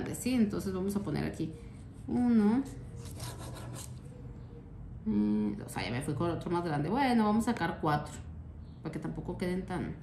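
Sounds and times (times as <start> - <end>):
bread knife sawing cake: 2.9 - 4.0.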